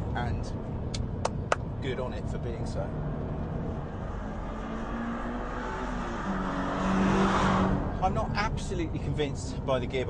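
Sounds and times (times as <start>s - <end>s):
road and wind noise: 0.0s - 10.0s.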